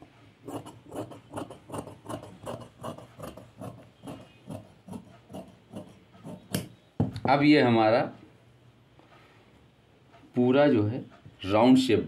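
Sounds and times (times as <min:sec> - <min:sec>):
scissors snipping fabric: 0:00.5 - 0:06.8.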